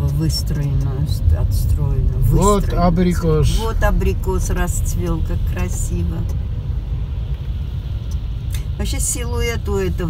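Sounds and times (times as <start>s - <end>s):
car engine rumble: 0.0s - 10.0s
road noise: 0.0s - 10.0s.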